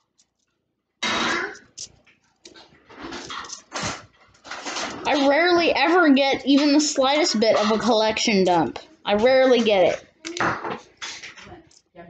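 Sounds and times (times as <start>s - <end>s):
coins clicking together: 1.6s - 1.9s.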